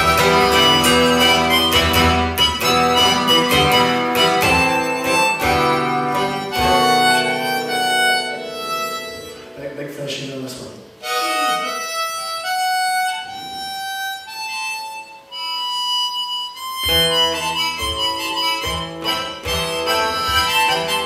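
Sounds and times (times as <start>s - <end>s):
harmonica playing: 0.0s - 10.1s, 11.0s - 21.0s
acoustic guitar strumming: 0.0s - 21.0s.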